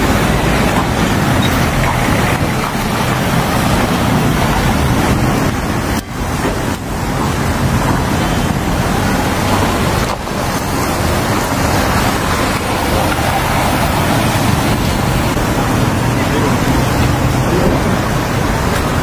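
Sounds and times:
rushing street noise: 0:00.0 - 0:19.0.

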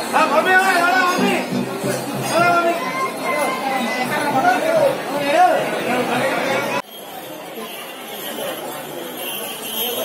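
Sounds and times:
crowd chatter in echoing hall: 0:00.0 - 0:10.0
crowd murmur: 0:01.1 - 0:10.0.

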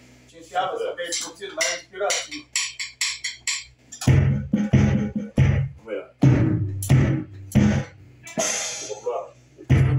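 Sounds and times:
electronic drum hits: 0:04.0 - 0:09.0.

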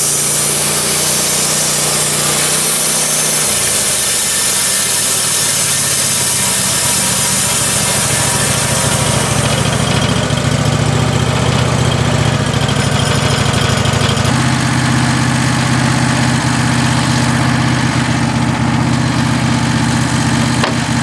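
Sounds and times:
saw blade hissing through wood: 0:00.0 - 0:10.7
sawmill engine running: 0:00.0 - 0:21.0.

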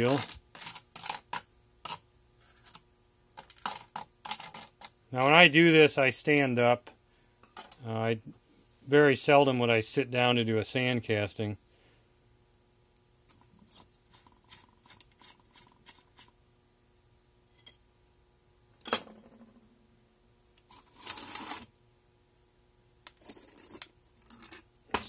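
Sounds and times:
scraping or rustling: 0:20.7 - 0:21.7.

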